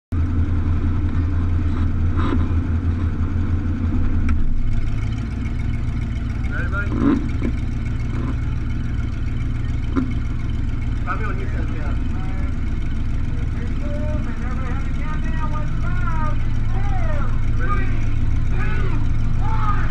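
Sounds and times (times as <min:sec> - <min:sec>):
car engine idling: 0:00.1 - 0:19.9.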